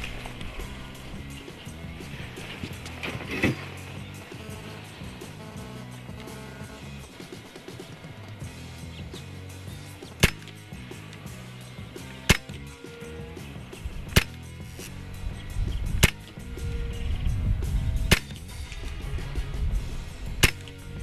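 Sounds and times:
air rifle shots: 10.0 - 11.0, 12.0 - 12.8, 14.0 - 14.5, 15.9 - 16.4, 18.0 - 18.5, 20.4 - 20.9.

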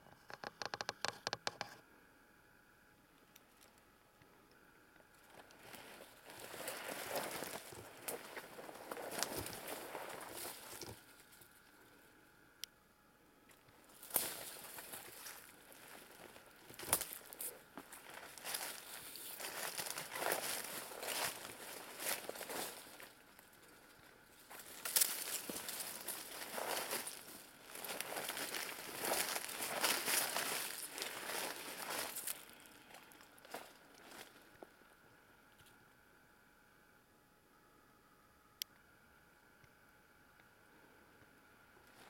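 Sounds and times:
footsteps crunching dry leaves: 5.6 - 11.3, 13.9 - 34.5.

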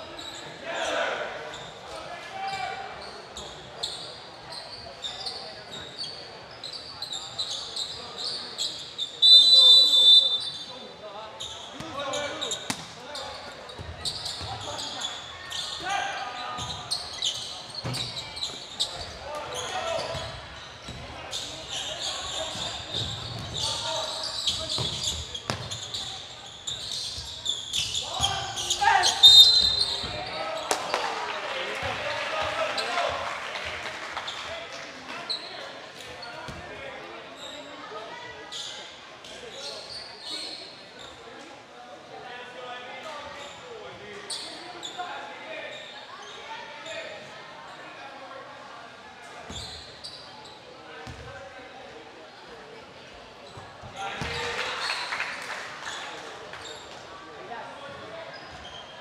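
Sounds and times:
crowd noise: 0.0 - 59.0
voices in a large hall: 0.0 - 59.0
sneaker squeaks: 0.1 - 31.0, 35.2 - 41.4, 43.0 - 48.0, 49.3 - 51.4, 53.4 - 55.2, 55.8 - 57.0, 57.7 - 59.0.

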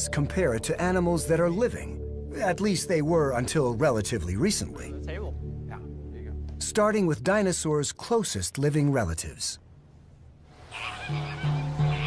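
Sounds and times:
background music: 0.0 - 8.0, 10.6 - 12.0
geese honking: 10.6 - 12.0.

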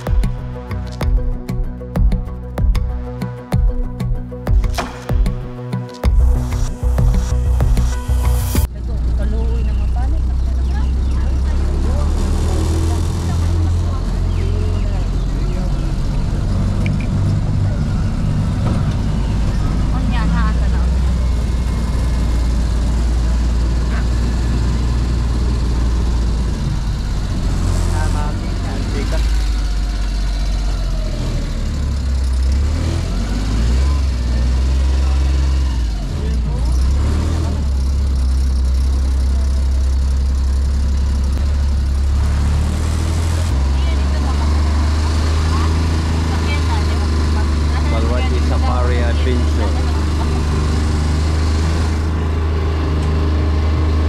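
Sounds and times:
indistinct voices: 43.6 - 51.2.

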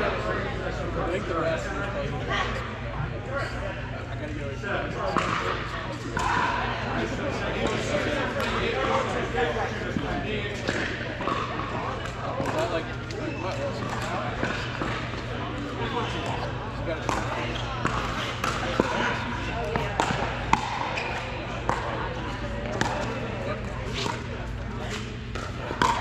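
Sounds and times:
background chatter: 0.0 - 26.0
balls bouncing on court: 5.1 - 6.7, 7.5 - 8.8, 9.9 - 26.0.

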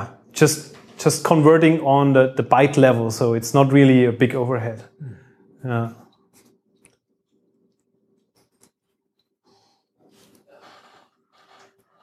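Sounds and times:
soft breaths: 9.2 - 12.0.

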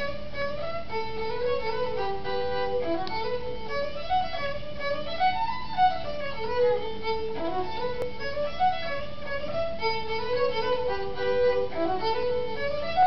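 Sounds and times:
fiddle playing a melody: 0.0 - 13.0.

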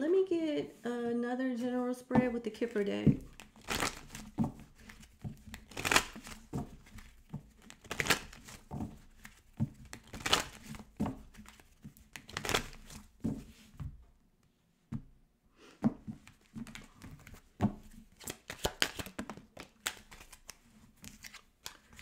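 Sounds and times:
cards being shuffled: 3.1 - 13.8, 16.2 - 22.0.

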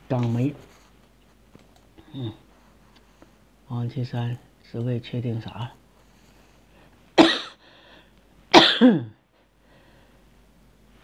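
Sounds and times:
person coughing: 7.2 - 7.6, 8.5 - 9.2.

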